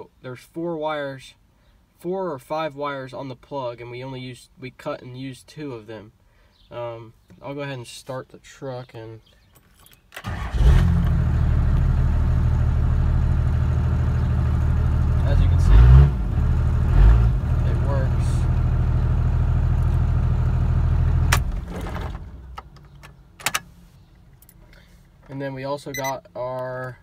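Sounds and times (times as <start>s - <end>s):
diesel engine starting and idling: 10.2s - 22.6s
engine revving: 10.3s - 21.5s.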